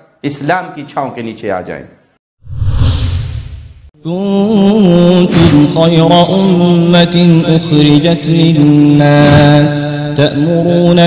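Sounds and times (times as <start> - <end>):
whoosh sound effect: 2.4 - 3.9, 5.3 - 5.7.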